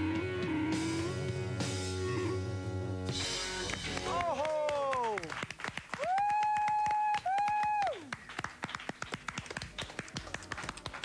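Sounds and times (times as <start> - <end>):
audience clapping: 3.5 - 11.0.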